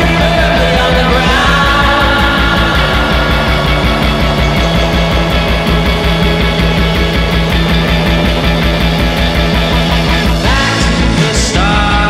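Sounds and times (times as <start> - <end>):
driving drum beat: 0.0 - 12.0
electric guitar: 0.0 - 12.0
pulsing bass: 0.0 - 12.0
rock band playing: 0.0 - 12.0.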